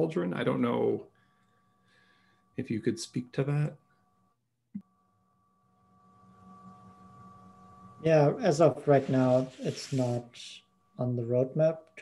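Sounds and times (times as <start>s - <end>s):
faint electrical hum: 0.0s - 4.1s, 6.3s - 12.0s
thin tones: 5.3s - 11.9s.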